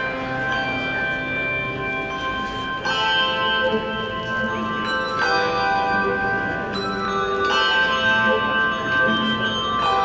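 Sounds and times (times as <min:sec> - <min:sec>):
handbells ringing: 0:00.0 - 0:10.0
high bell note: 0:00.0 - 0:10.0.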